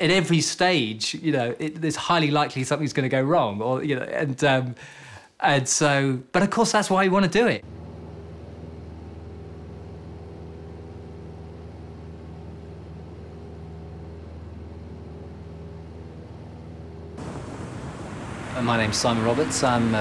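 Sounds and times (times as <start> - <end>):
steady low drone: 7.6 - 20.0
broad rushing noise: 17.2 - 20.0.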